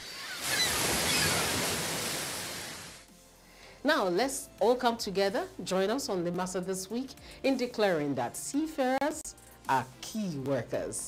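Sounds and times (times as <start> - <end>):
rushing noise sound effect: 0.2 - 3.1.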